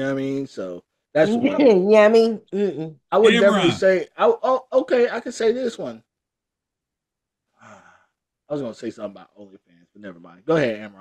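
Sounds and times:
person breathy vocal sound: 2.6s - 3.8s, 7.6s - 8.0s.

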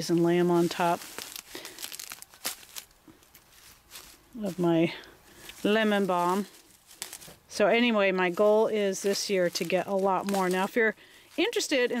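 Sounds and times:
leaves snapping and rustling: 0.0s - 7.6s, 8.3s - 12.0s.

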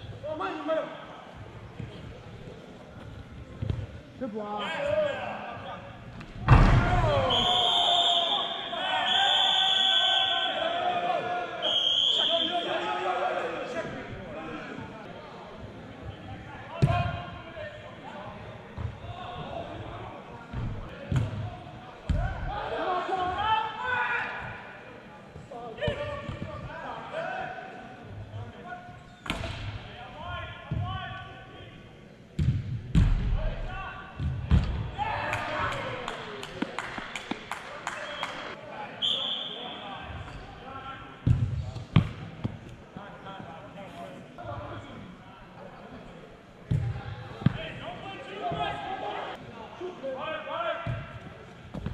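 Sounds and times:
players shouting: 6.7s - 15.0s.

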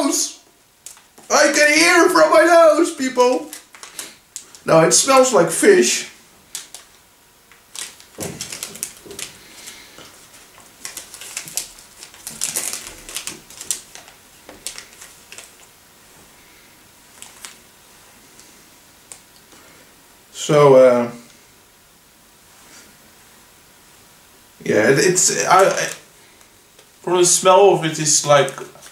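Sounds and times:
plastic wrapper crinkling: 0.7s - 5.3s, 6.3s - 16.3s, 17.0s - 17.7s, 25.1s - 27.1s, 28.3s - 28.9s.

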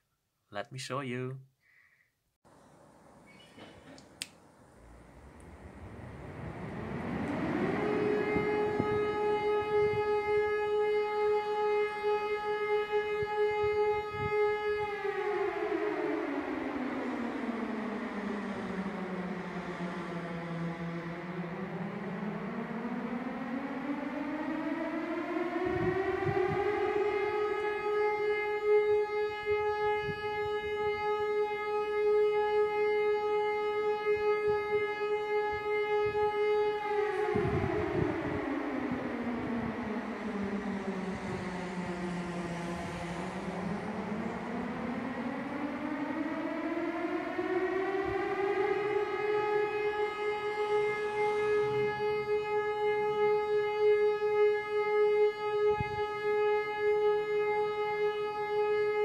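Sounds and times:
synthesized siren wailing: 4.7s - 59.0s.

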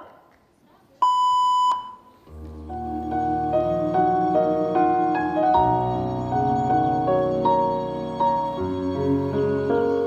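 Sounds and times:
steady electronic beep: 1.0s - 2.2s
soft keyboard music: 2.1s - 10.0s.

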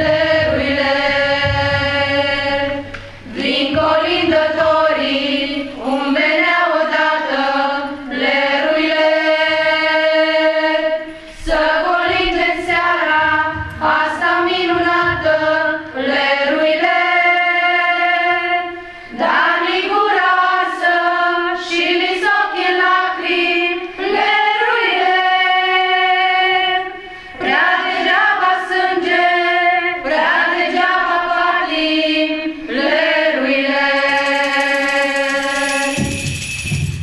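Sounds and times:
women singing together: 0.0s - 36.6s.

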